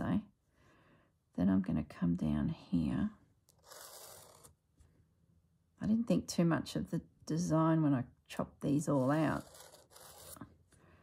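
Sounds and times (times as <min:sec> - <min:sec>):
pen scratching along fabric: 0:03.5 - 0:04.6, 0:08.9 - 0:10.6.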